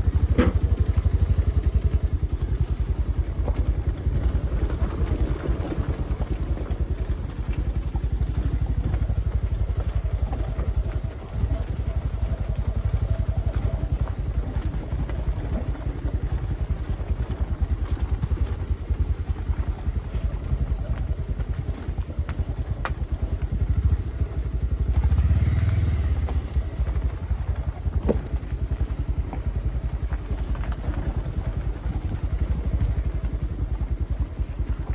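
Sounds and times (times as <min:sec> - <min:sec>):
small engine running: 0:00.0 - 0:34.9.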